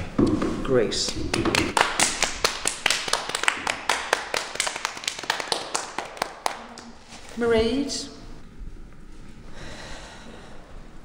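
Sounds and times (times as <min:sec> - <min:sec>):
small group applause: 0:01.3 - 0:07.0.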